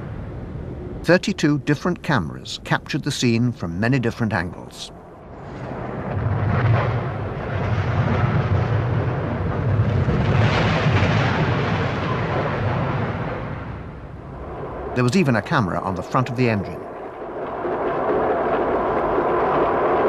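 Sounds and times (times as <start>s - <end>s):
train crash rumbling: 5.5s - 13.9s.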